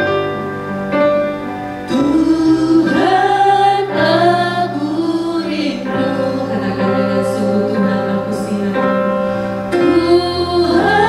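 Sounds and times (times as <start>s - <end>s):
instrumental backing: 0.0s - 11.0s
women singing worship song: 1.9s - 11.0s.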